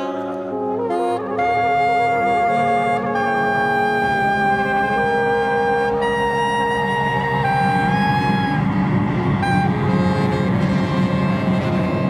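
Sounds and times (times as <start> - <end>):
held wind instrument note: 0.0 - 12.0
low sustained strings: 0.0 - 12.0.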